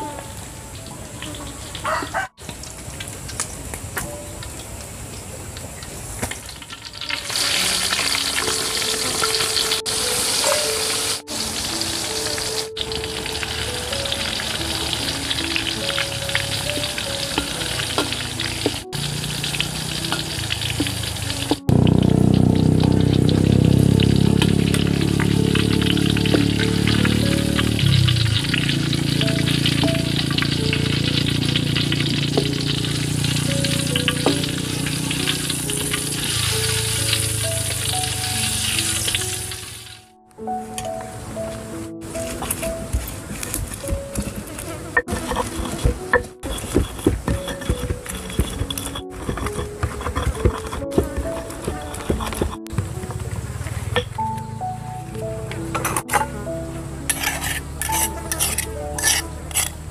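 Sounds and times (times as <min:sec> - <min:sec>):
music playing: 0:00.0 - 0:02.2, 0:07.0 - 0:59.8
hot oil sizzling in a wok: 0:05.8 - 0:40.1, 0:57.1 - 0:59.8.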